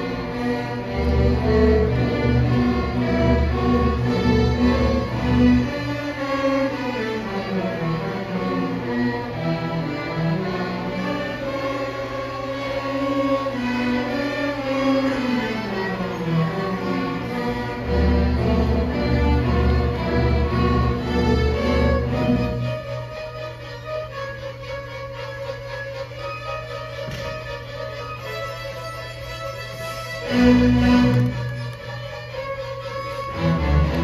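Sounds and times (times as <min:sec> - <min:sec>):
low cello notes: 0:00.0 - 0:34.0
string orchestra playing: 0:00.0 - 0:34.0.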